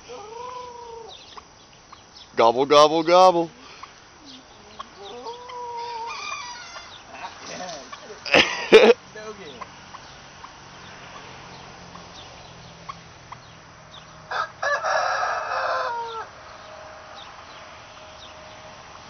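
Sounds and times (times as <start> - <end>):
rooster crowing: 0.0 - 1.2, 5.0 - 7.3, 14.3 - 17.0.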